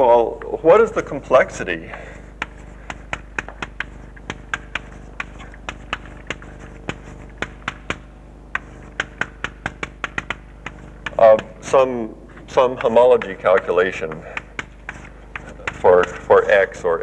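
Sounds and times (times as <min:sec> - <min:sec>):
chalk tapping on a blackboard: 0:01.9 - 0:17.0.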